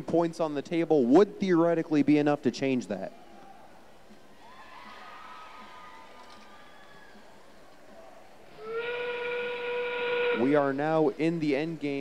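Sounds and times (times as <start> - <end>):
faint arena background: 0.0 - 12.0
train whistle sound: 8.6 - 10.7.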